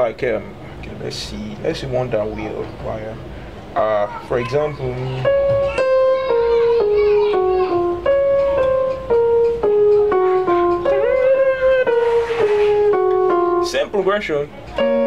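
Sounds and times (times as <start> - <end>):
electronic keyboard melody: 5.2 - 15.0.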